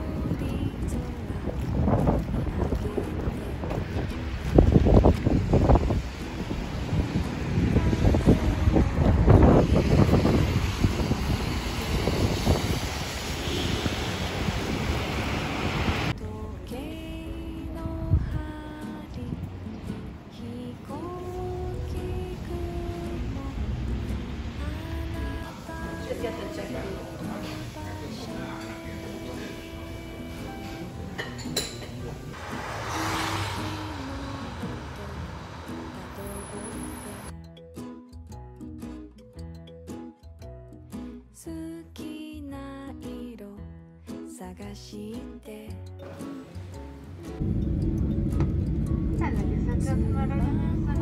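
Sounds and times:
wind buffeting microphone: 0:00.0 - 0:16.2, 0:17.0 - 0:20.3, 0:47.4 - 0:51.0
quiet background music: 0:16.1 - 0:51.0.

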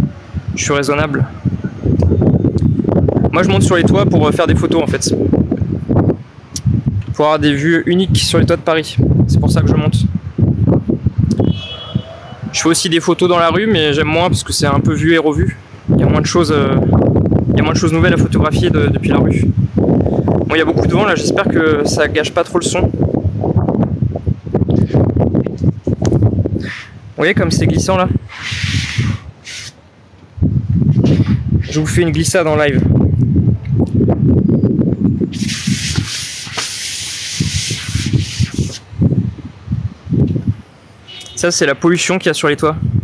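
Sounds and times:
wind buffeting microphone: 0:00.0 - 0:29.5, 0:30.3 - 0:41.3, 0:42.7 - 0:43.0.

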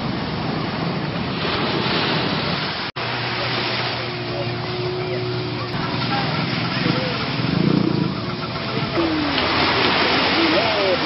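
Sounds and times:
surf washing onto beach: 0:00.0 - 0:11.0.

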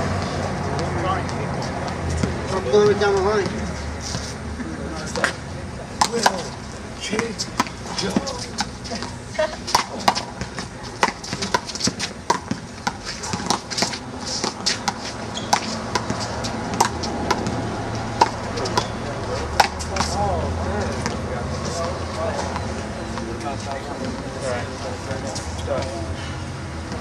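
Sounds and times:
indistinct voices: 0:13.0 - 0:27.0.

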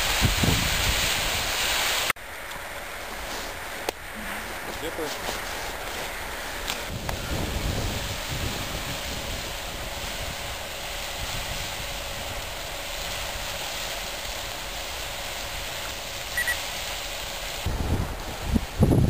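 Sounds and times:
geyser erupting with rushing hiss: 0:00.0 - 0:19.0.

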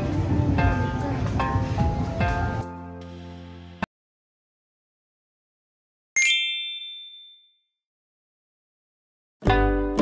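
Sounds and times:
bell-like ding: 0:06.2 - 0:07.6.

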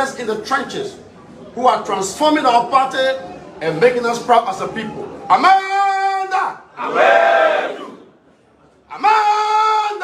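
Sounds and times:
crowd shouting together: 0:06.8 - 0:08.0
man shouting: 0:08.9 - 0:10.0.

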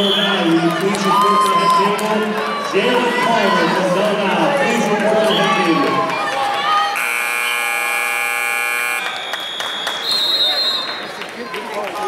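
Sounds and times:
crowd noise and voices: 0:00.0 - 0:12.0
scoreboard buzzer: 0:06.9 - 0:09.4.

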